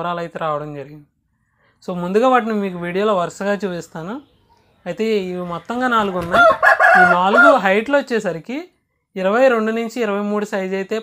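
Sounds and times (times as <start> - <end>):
rooster crowing: 6.2 - 7.7.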